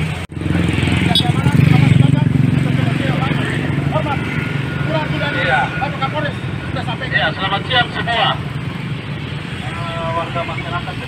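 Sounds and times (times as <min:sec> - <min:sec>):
crowd voices: 0:00.0 - 0:11.0
vehicle engine rumbling: 0:00.0 - 0:11.0.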